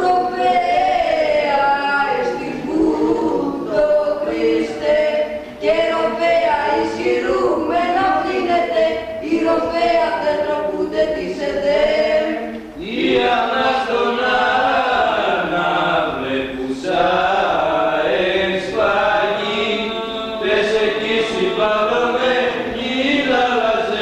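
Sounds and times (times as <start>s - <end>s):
men chanting unaccompanied: 12.8s - 24.0s.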